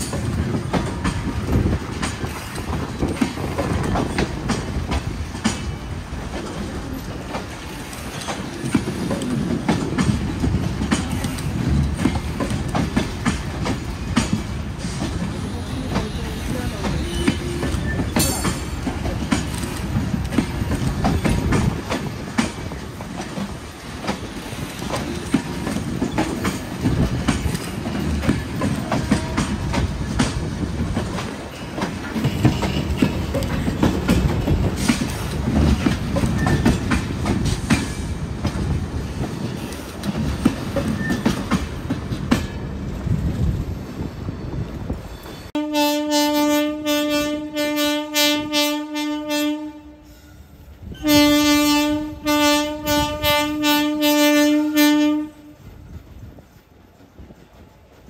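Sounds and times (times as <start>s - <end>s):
train wheels clicking over rail joints: 0.0s - 45.5s
locomotive horn blast: 45.6s - 50.0s, 51.0s - 55.6s.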